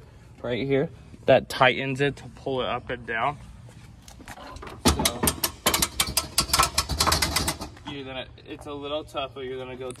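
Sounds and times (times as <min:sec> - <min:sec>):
hand crank clicking and rattling: 0:04.9 - 0:07.8.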